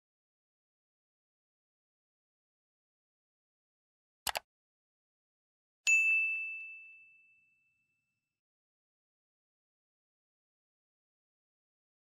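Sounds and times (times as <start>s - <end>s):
bell ding notification: 5.9s - 8.0s.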